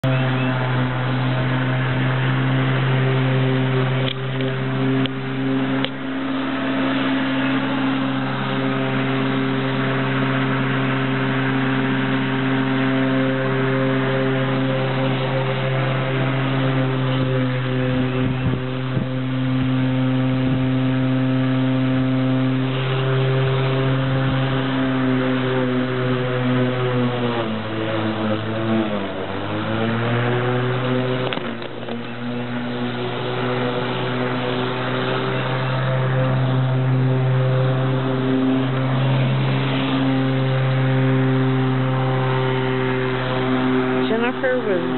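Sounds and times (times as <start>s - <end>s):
electric lawn mower running: 0.0s - 44.9s.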